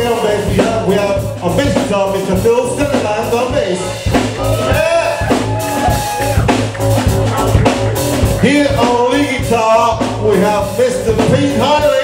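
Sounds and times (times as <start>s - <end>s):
drum kit beat: 0.0s - 12.0s
rock band playing: 0.0s - 12.0s.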